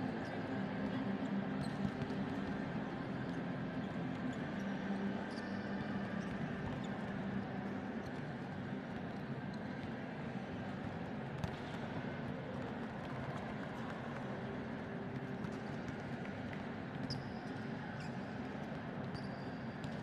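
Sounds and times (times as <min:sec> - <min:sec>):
sports hall hum: 0:00.0 - 0:20.0.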